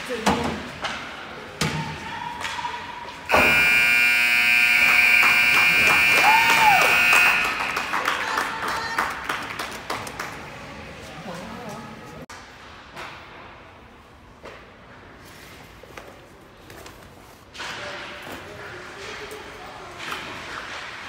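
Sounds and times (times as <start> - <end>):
arena game horn: 3.3 - 8.1.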